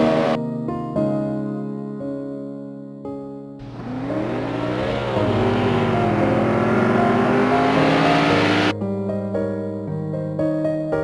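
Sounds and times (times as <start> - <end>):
car engine revving: 0.0 - 0.4, 3.6 - 8.7.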